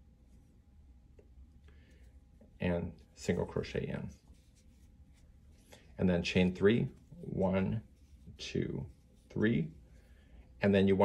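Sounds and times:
yarn rubbing on crochet hook: 0:03.0 - 0:10.0.

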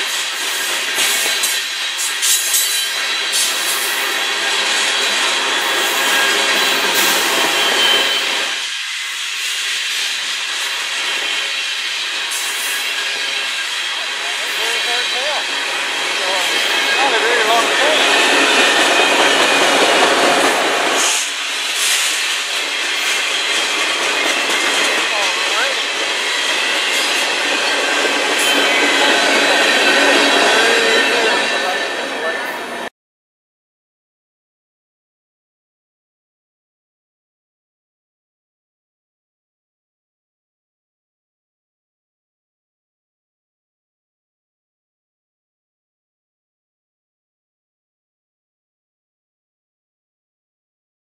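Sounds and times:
train wheels clattering over rails: 0:00.0 - 0:32.7
high-pitched wheel squeals: 0:05.7 - 0:08.6, 0:25.4 - 0:32.8.

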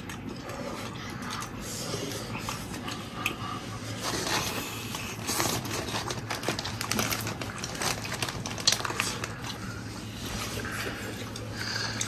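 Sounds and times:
man chewing and gnawing: 0:00.0 - 0:12.0.

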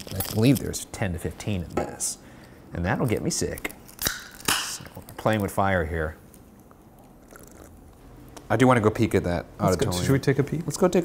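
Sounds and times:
food being bitten and chewed: 0:06.3 - 0:08.0.

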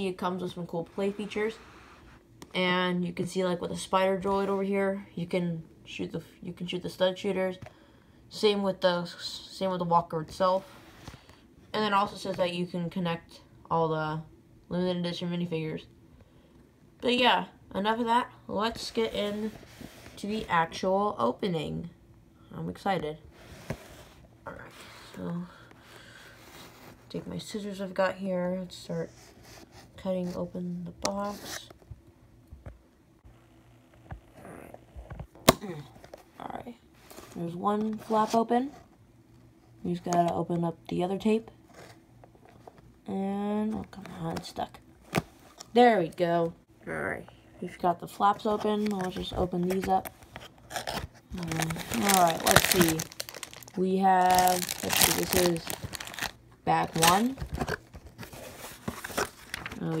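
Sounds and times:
plastic bags crinkling: 0:50.6 - 1:00.0.

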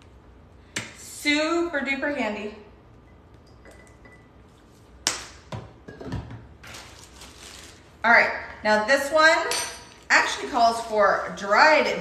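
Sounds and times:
woman speaking: 0:01.0 - 0:02.7, 0:08.0 - 0:12.0
rustling: 0:06.6 - 0:07.9.

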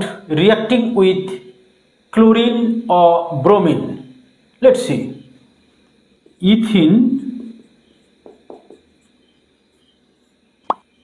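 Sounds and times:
marker squeaking on whiteboard: 0:07.2 - 0:10.4.

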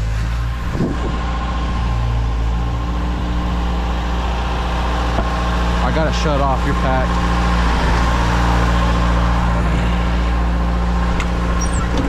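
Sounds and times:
concrete pump engine droning: 0:00.0 - 0:12.0
concrete truck running: 0:00.0 - 0:12.0.

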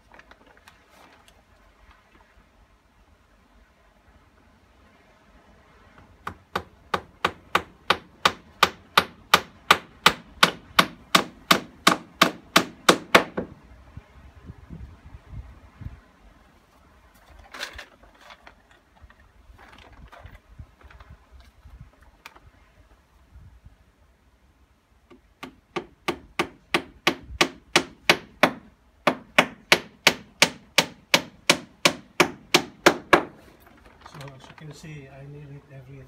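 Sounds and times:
hammer striking nail into wood: 0:06.2 - 0:13.5, 0:25.1 - 0:33.4.

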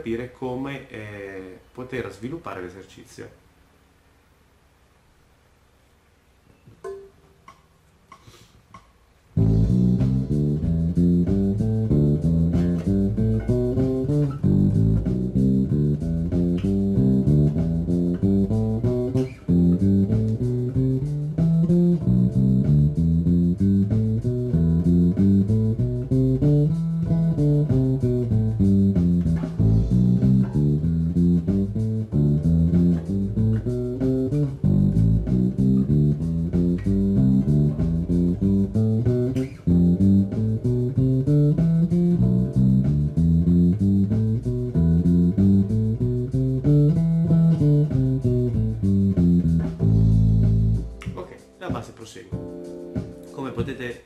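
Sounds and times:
electric bass playing scales: 0:09.3 - 0:51.2.

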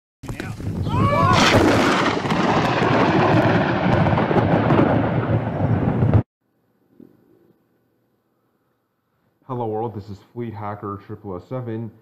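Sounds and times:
rolling thunder: 0:00.6 - 0:06.3.

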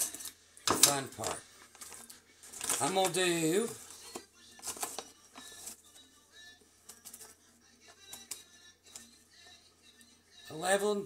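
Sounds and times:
faint background music: 0:00.0 - 0:11.0
plastic pouch crinkling: 0:01.8 - 0:05.8.

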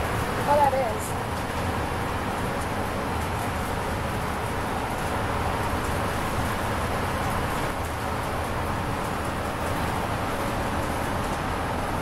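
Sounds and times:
bus road and engine noise: 0:00.0 - 0:12.0.

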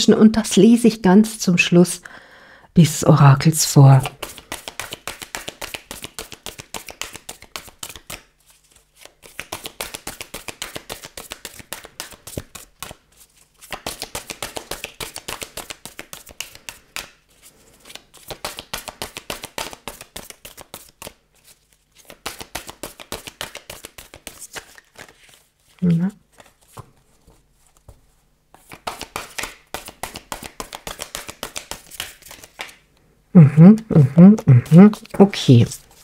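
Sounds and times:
cards being shuffled: 0:04.0 - 0:32.8, 0:33.9 - 0:36.0.

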